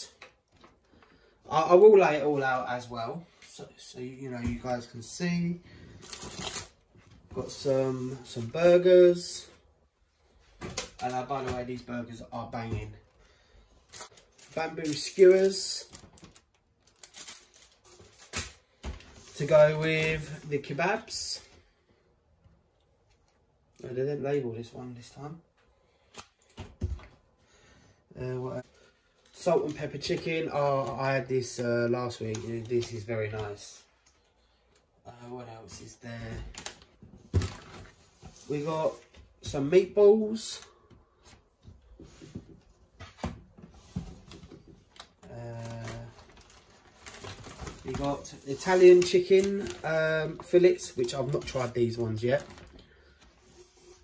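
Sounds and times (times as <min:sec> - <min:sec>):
plastic packaging rustling: 0:05.8 - 0:08.6, 0:13.8 - 0:21.2, 0:43.2 - 0:54.0
foil and plastic crinkling: 0:13.9 - 0:20.4, 0:44.9 - 0:53.2.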